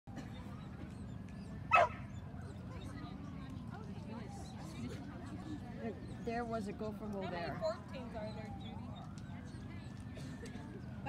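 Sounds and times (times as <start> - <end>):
dog barking: 1.7 - 2.0.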